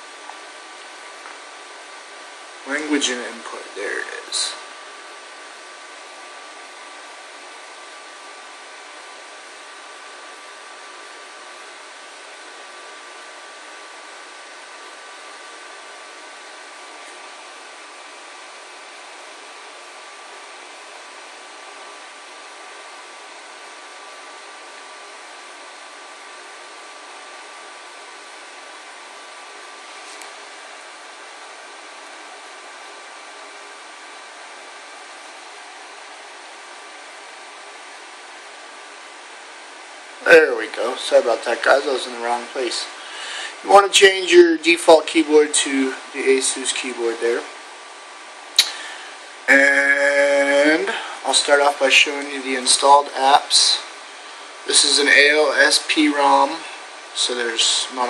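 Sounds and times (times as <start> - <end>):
background hiss: 29.0 - 58.0.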